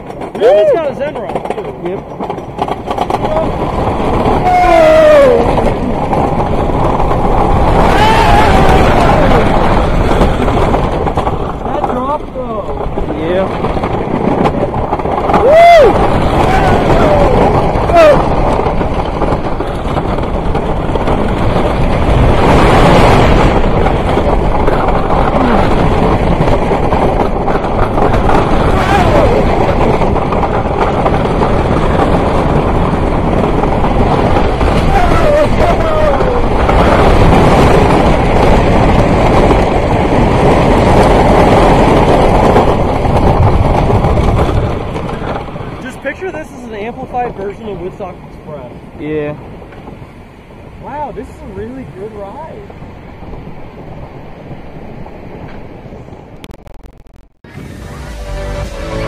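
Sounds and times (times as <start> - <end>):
roller coaster wheels rumbling: 0.0 - 59.0
wind buffeting microphone: 0.0 - 59.0.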